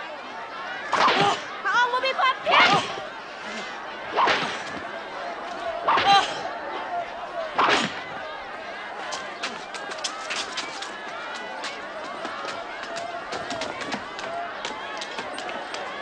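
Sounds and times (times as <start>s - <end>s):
crowd murmuring: 0.0s - 16.0s
short sharp clicks and scuffs: 9.0s - 14.0s.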